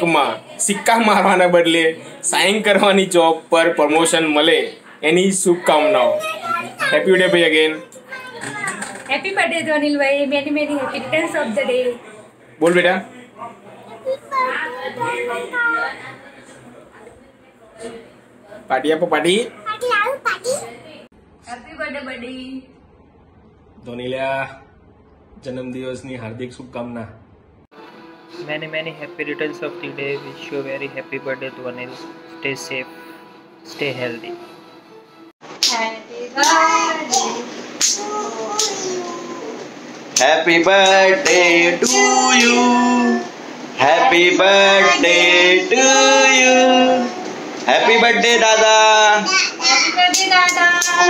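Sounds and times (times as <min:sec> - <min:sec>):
small child speaking: 0:05.7 - 0:09.1, 0:13.9 - 0:15.8, 0:19.6 - 0:20.8, 0:38.0 - 0:39.6, 0:49.2 - 0:50.2
hand claps: 0:35.6 - 0:35.8, 0:36.4 - 0:37.2, 0:37.8 - 0:38.8.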